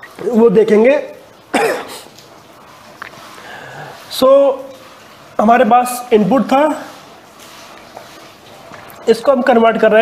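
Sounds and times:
man coughing: 0:01.5 - 0:02.1.

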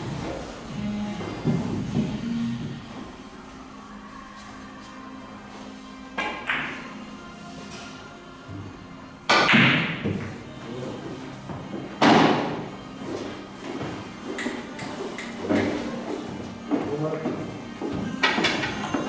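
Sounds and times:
background music: 0:00.0 - 0:19.0
billiard balls clacking: 0:06.2 - 0:06.9, 0:16.8 - 0:19.0.

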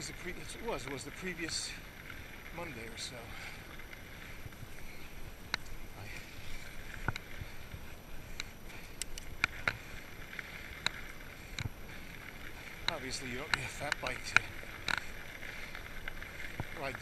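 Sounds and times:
bike tyres rolling on dirt: 0:00.0 - 0:17.0
bike clicks and knocks: 0:03.4 - 0:17.0.

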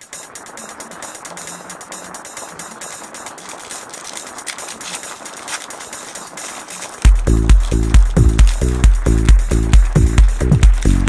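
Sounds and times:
foil wrapper crinkling and tearing: 0:02.4 - 0:11.0.

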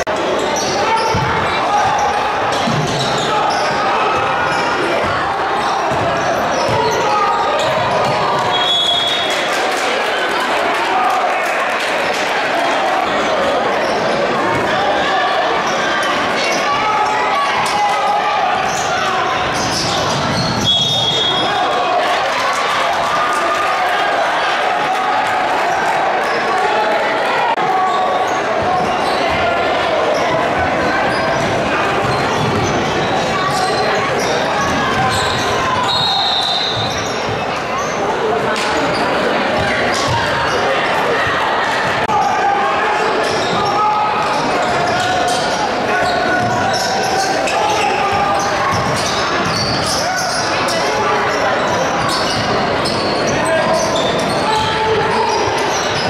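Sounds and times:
spectators' voices echoing: 0:00.0 - 0:56.0.

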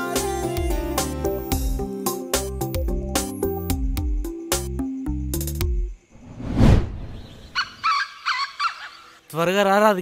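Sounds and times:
whoosh: 0:06.2 - 0:07.4
short bird calls: 0:07.1 - 0:09.3.

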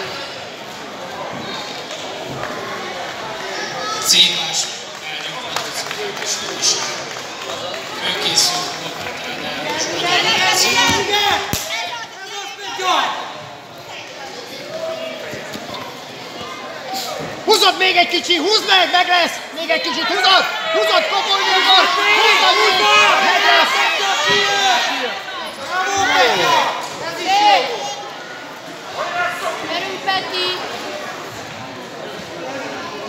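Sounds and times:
indistinct shouting and talk: 0:00.0 - 0:33.0
spectators and coaches chattering: 0:00.0 - 0:33.0.

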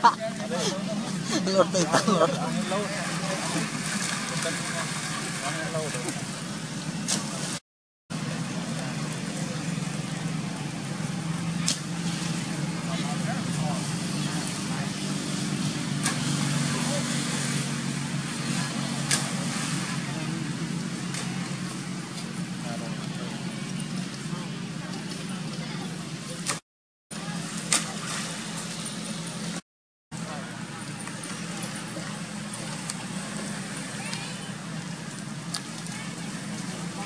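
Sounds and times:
people talking: 0:00.0 - 0:06.4, 0:08.2 - 0:26.6, 0:27.2 - 0:28.9, 0:30.2 - 0:37.0
low motor hum: 0:00.0 - 0:26.6, 0:30.2 - 0:37.0.

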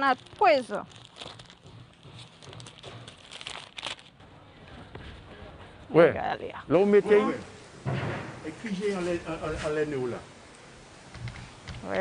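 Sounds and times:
plastic packaging crinkling: 0:00.0 - 0:04.2.

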